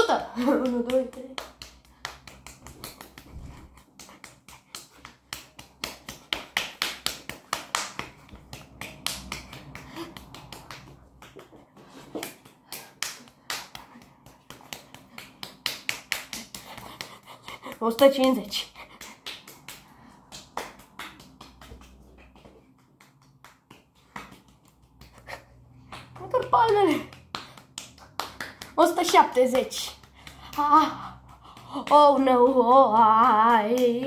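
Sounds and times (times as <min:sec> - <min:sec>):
person clapping rapidly: 0:00.0 - 0:34.0.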